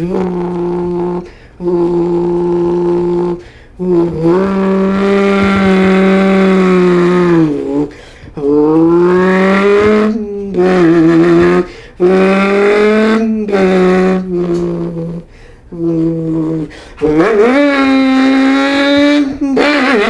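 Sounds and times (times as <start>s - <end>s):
man imitating engine with voice: 0.0s - 20.0s.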